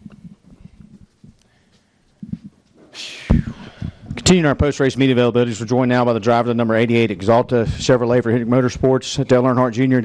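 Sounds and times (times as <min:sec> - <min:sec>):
soft thumps and shuffling: 0:00.0 - 0:04.3.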